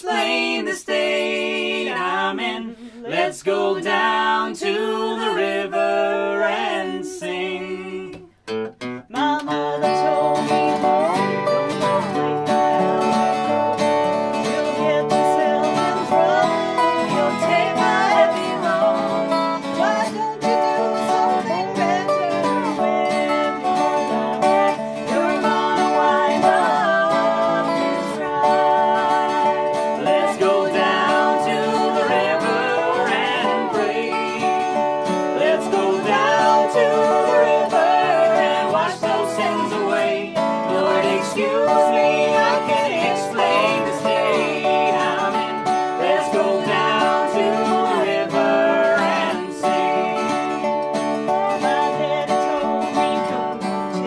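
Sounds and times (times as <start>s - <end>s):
person singing: 0.0s - 8.4s, 9.1s - 13.6s, 14.2s - 54.0s
strummed acoustic guitar: 0.0s - 54.0s
slide resonator guitar: 5.2s - 54.0s.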